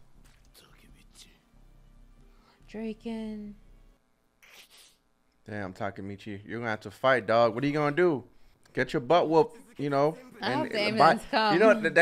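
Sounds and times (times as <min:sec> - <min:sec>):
faint whispering voice: 0:00.5 - 0:01.4.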